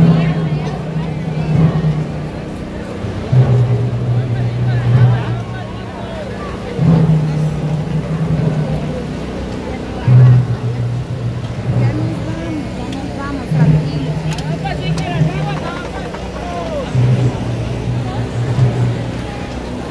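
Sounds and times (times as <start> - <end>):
crowd voices: 0.0 - 19.9.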